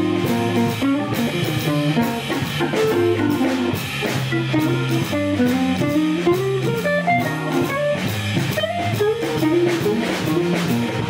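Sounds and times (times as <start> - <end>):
drums: 0.0 - 11.0
electric guitar: 0.0 - 11.0
low bass line: 0.0 - 11.0.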